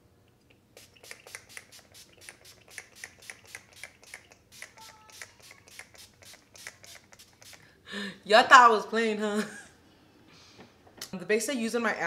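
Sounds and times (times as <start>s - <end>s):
spray bottle misting: 0.7s - 7.7s.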